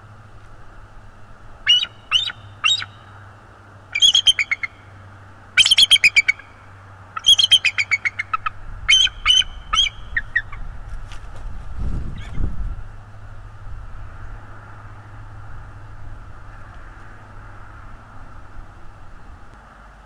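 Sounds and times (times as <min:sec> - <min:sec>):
eagle chattering calls: 0:01.6 - 0:03.2, 0:03.9 - 0:04.9, 0:05.5 - 0:10.6
eagle piping calls: 0:01.6 - 0:03.2, 0:03.9 - 0:04.9, 0:05.5 - 0:10.6.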